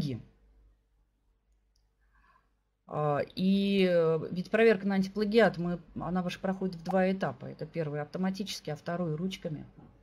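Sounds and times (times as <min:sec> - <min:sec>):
woman's voice: 0:00.0 - 0:00.3, 0:02.8 - 0:10.0.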